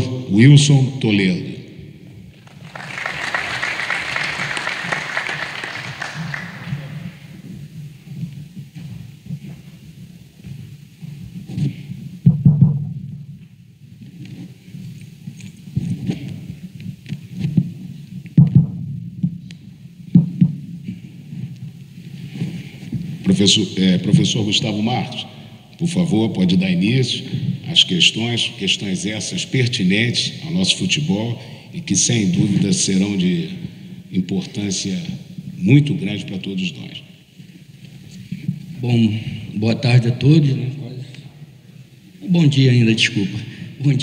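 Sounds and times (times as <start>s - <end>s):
audience applauding: 2.3s - 7.4s.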